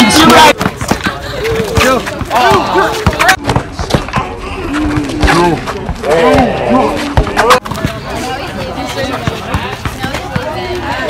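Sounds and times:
basketball bouncing on asphalt: 0.0 - 11.0
people shouting excitedly: 1.2 - 3.3.

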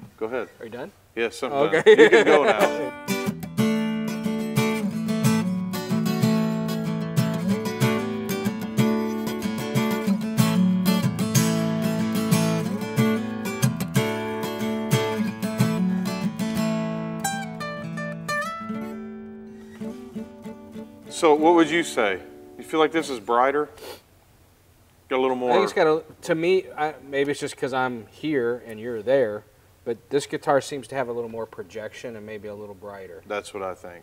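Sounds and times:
acoustic guitar strummed: 2.1 - 22.9.

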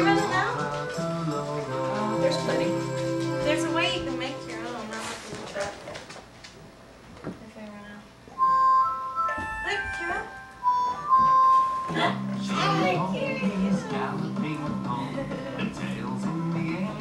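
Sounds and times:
electronic beeping jingle: 8.4 - 12.9
voices: 11.9 - 17.0.

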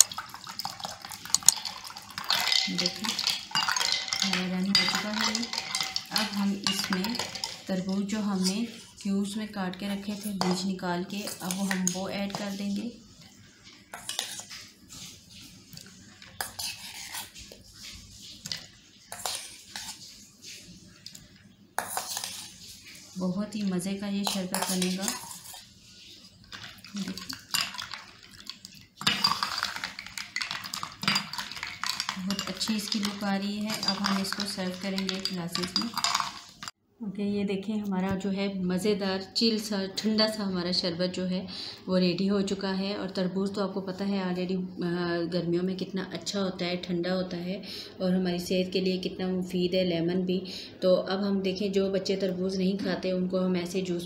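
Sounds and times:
ice and ladle clinking in pot: 0.0 - 8.6, 24.2 - 25.6, 26.5 - 36.7
water pouring and splashing: 0.0 - 9.0, 11.2 - 36.8.

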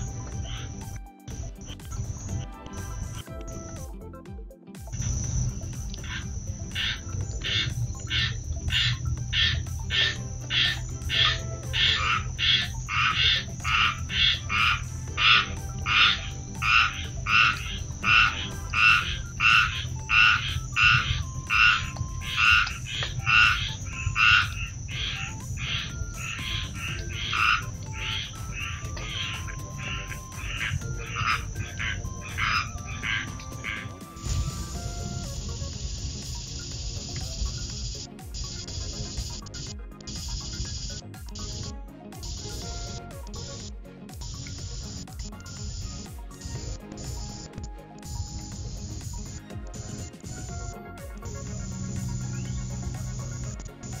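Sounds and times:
high-pitched whine: 0.0 - 3.2, 5.0 - 43.6, 48.1 - 54.0
animal calling rhythmically: 0.0 - 3.9, 5.0 - 34.6, 48.0 - 54.0.

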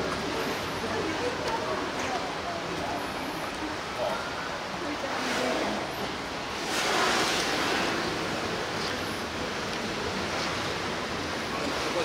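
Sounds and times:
water rushing: 0.0 - 12.0.

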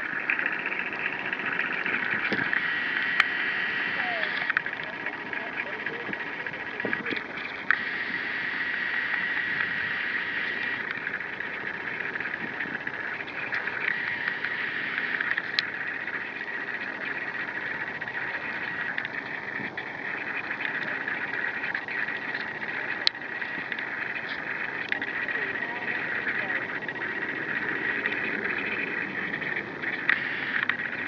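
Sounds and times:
high-pitched insect drone: 0.0 - 31.0
sharp clicks: 0.0 - 31.0.

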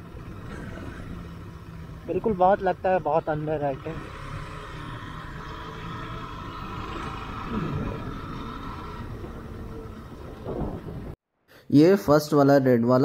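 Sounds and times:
motorcycle engine running: 0.0 - 11.2
road noise: 0.0 - 11.2.

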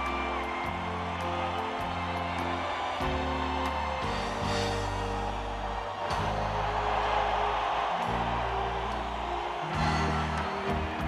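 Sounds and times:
live band playing overture: 0.0 - 8.6.

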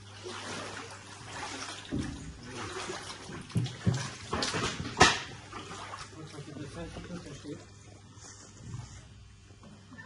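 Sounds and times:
footsteps wading through water: 0.0 - 9.6.

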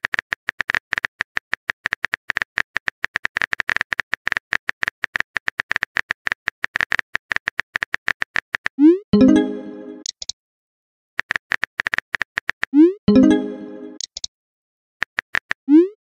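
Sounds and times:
phone keyboard typing clicks: 13.3 - 14.3.

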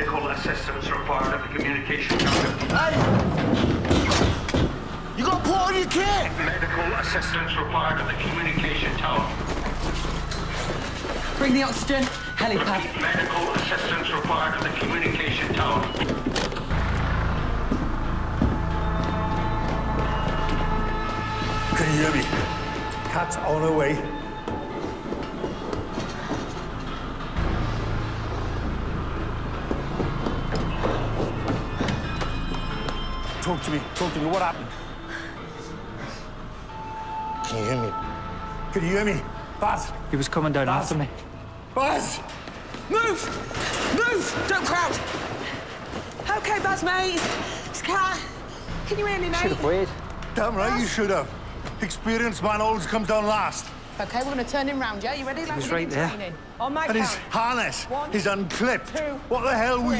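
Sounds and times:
steady low rumble: 16.6 - 23.0.

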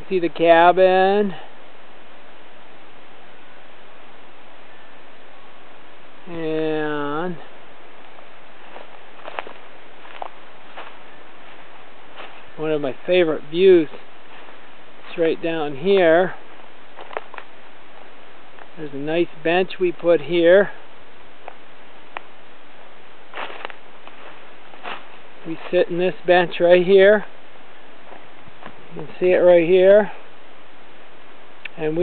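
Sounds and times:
background hiss: 0.0 - 32.0
footsteps on leaves: 8.0 - 13.1, 13.8 - 15.2, 16.4 - 18.8, 22.8 - 26.2, 27.7 - 29.2.

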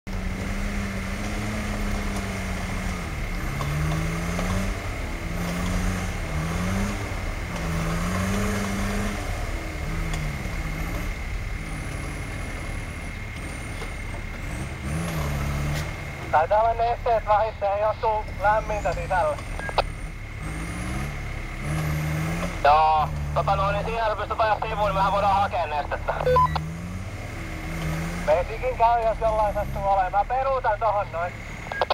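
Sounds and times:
van engine labouring uphill: 0.0 - 31.9
short beeps rising in pitch: 19.5 - 19.9, 26.1 - 26.7, 31.6 - 31.9.

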